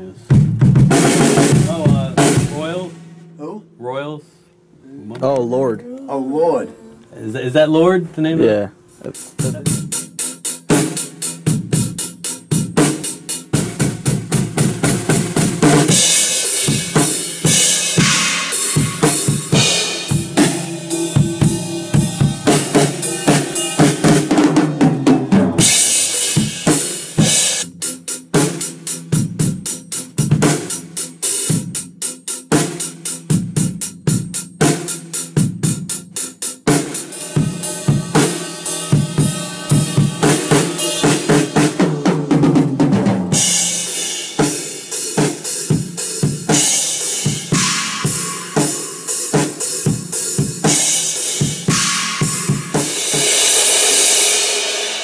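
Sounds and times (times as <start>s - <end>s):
drum kit rock beat: 0.0s - 4.2s, 8.4s - 55.0s
cymbal wash: 1.0s - 3.7s, 9.2s - 27.7s, 36.7s - 55.0s.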